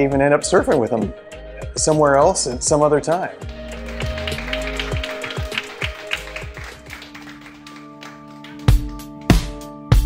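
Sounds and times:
music with held notes: 0.1 - 10.0
small group clapping: 3.4 - 9.6.

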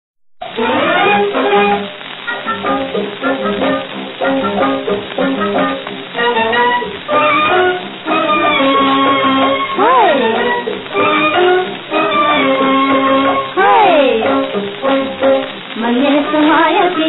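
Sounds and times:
small orchestra playing melody: 0.6 - 1.9, 4.2 - 13.6.

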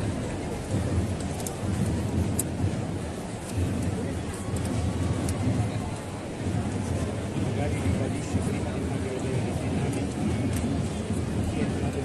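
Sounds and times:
large crowd chattering: 0.0 - 12.0.

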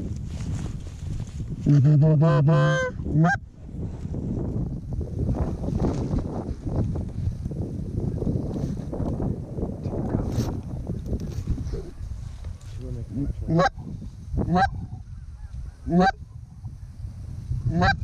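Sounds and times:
goose honking and clucking: 1.6 - 3.4, 13.5 - 13.8, 14.5 - 15.0, 15.8 - 16.2.

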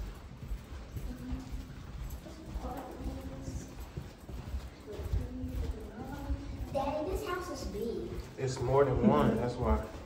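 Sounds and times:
footsteps on carpet: 0.0 - 10.0.

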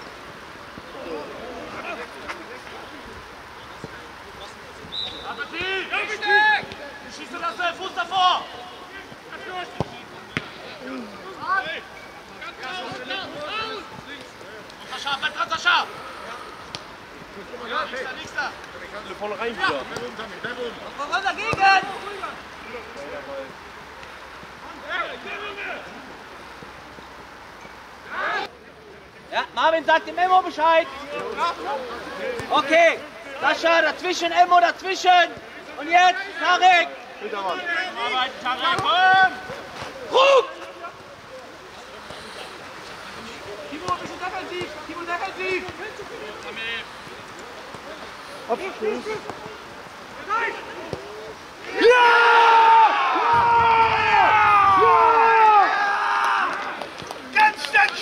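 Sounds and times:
outdoor hiss: 0.0 - 58.0
footballers shouting: 3.6 - 23.8, 29.4 - 58.0.

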